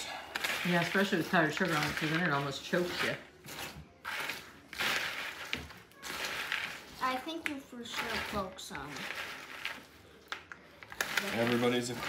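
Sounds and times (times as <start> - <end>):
spoon stirring crunchy cereal: 0.0 - 12.0.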